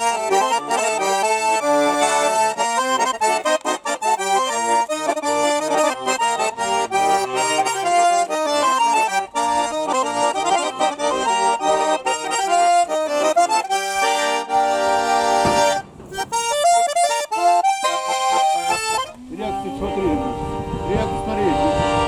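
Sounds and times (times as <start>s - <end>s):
button accordion playing folk tune: 0.0s - 22.0s.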